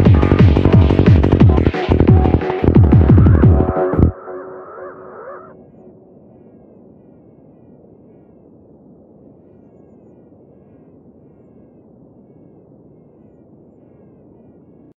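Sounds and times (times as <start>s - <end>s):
low grainy noise: 0.0s - 14.9s
gliding electronic tones: 1.4s - 7.8s.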